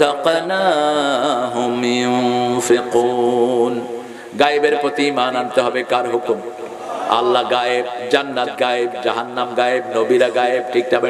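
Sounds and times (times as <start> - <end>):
man chanting melodic recitation: 0.0 - 11.0.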